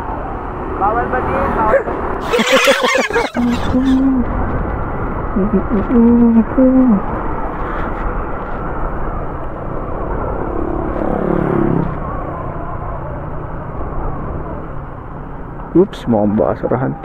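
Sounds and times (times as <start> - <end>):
wind rushing on microphone: 3.2 - 15.4.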